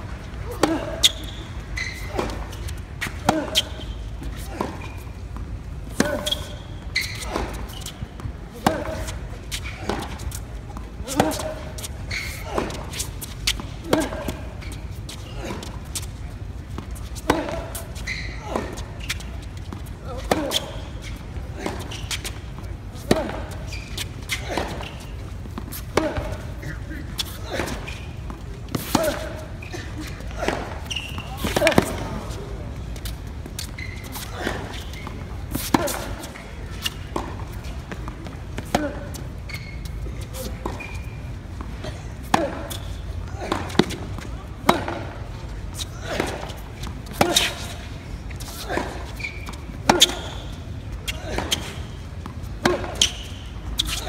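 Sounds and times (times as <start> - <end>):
tennis ball bouncing on court: 0.6 - 54.0
tennis ball struck by racquets: 7.2 - 9.2, 11.0 - 11.9, 16.8 - 17.9, 23.0 - 26.5, 30.3 - 32.2, 35.5 - 39.2, 42.2 - 45.2, 46.0 - 47.8, 48.4 - 50.4, 51.3 - 54.0.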